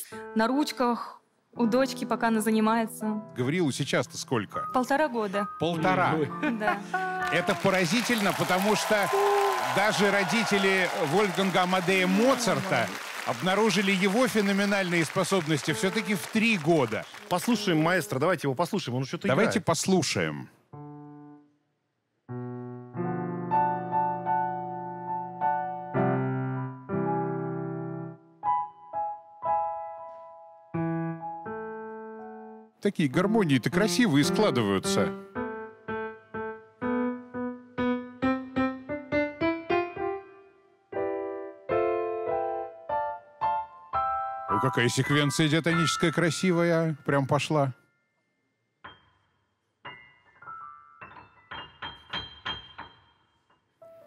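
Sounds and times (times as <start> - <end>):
piano chords ringing: 1.6 - 18.4, 22.3 - 54.0.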